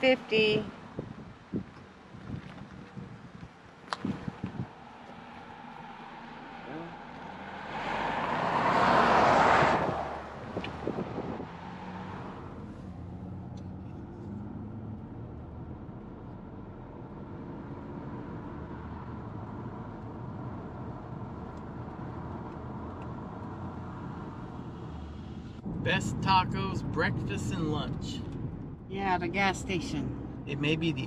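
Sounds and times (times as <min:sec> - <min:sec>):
pickup truck passing by: 0:01.9 - 0:31.0.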